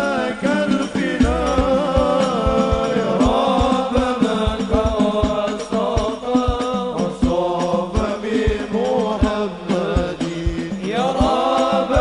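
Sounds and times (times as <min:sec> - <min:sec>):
man singing ornamented melody: 0:00.0 - 0:12.0
deep frame drum strokes: 0:00.8 - 0:12.0.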